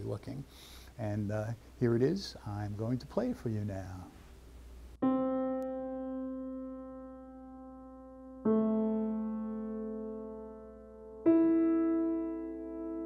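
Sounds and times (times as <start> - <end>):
piano chords ringing: 5.0 - 13.0.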